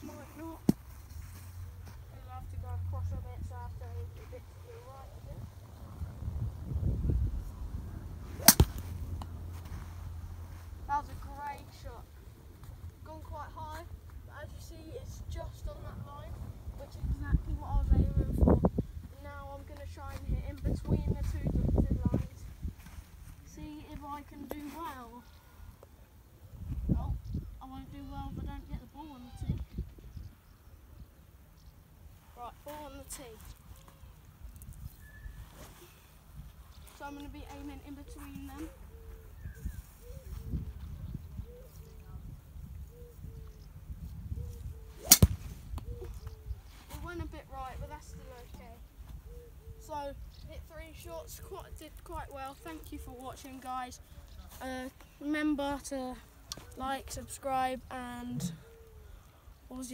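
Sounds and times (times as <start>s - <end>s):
golf driver striking ball: 8.4s - 8.9s, 45.0s - 45.5s.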